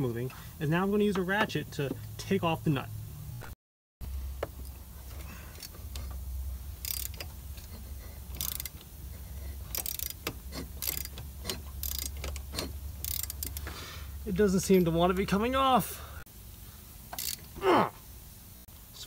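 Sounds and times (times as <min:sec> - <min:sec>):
steady low hum: 0:00.0 - 0:19.0
socket ratchet clicking: 0:06.8 - 0:07.7, 0:08.3 - 0:08.9, 0:09.7 - 0:13.7, 0:17.1 - 0:17.5.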